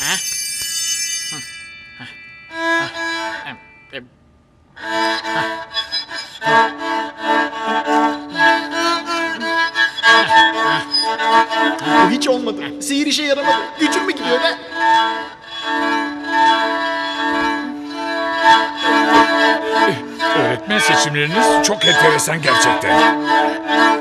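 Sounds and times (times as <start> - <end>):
magic sparkle chime: 0.0 - 3.9
out of tune violin playing: 2.5 - 3.9, 4.8 - 24.0.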